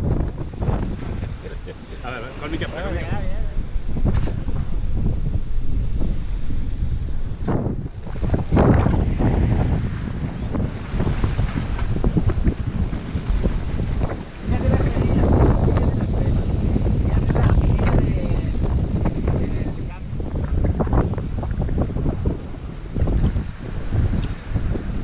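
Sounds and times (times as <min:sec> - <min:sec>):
waves rushing along hull: 0:00.0 - 0:25.0
wind buffeting microphone: 0:00.0 - 0:25.0.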